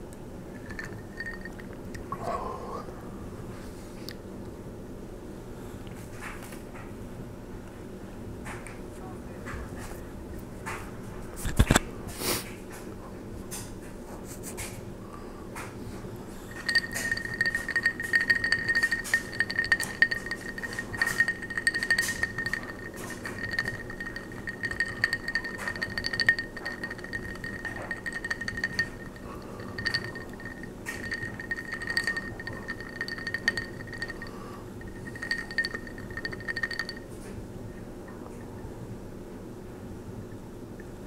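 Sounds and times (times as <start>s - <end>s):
glass clinking and ringing: 0.6s - 1.8s, 16.5s - 37.1s.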